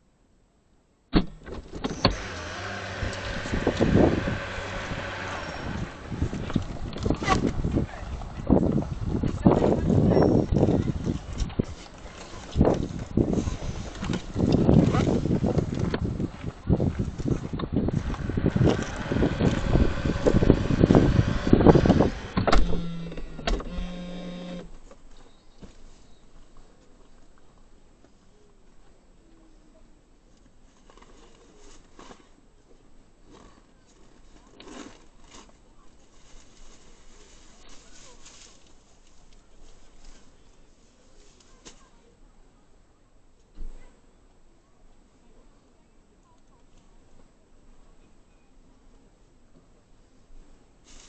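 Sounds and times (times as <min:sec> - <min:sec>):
small electric motor whining: 0:01.9 - 0:06.4, 0:17.9 - 0:24.7.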